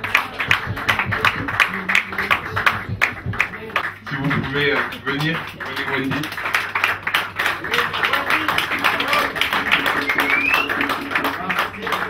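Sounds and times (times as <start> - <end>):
audience clapping: 0.0 - 12.0
music playing: 8.4 - 12.0
short rising whistle: 10.1 - 11.0.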